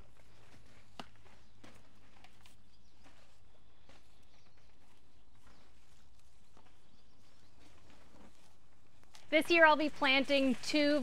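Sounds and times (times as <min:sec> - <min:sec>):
hands rustling in soil: 0:00.0 - 0:11.0.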